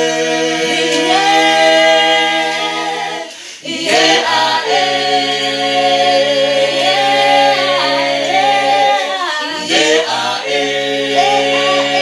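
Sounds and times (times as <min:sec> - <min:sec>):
group singing a cappella chant: 0:00.0 - 0:12.0.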